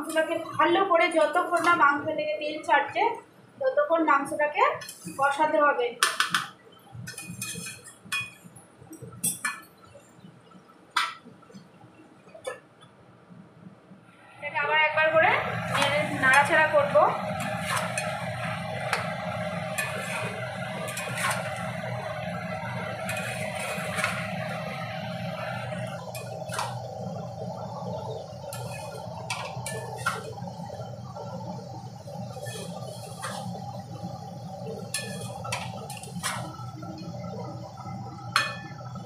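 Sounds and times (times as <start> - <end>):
steady low hum: 6.6 - 39.0
spoon scraping metal pan: 7.1 - 8.4, 17.3 - 19.1, 19.7 - 21.8, 22.8 - 24.6, 28.5 - 30.4, 32.2 - 33.6, 34.9 - 36.6.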